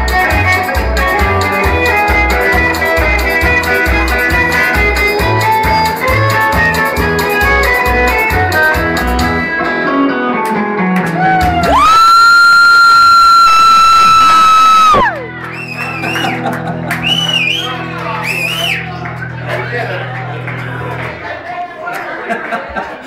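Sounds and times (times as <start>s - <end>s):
drums keeping a beat: 0.0s - 9.5s, 10.5s - 12.0s
electric guitar playing polka: 0.0s - 21.3s
whoops and whistles: 11.2s - 16.4s, 17.0s - 18.9s.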